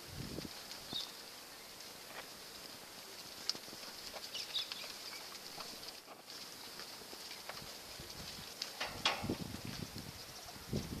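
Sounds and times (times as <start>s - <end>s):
cattle hooves thudding on dirt: 0.0s - 11.0s.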